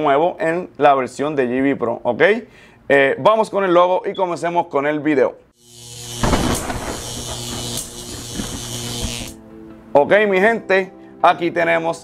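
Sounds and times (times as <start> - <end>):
electric buzz with low hum: 5.6 - 9.4.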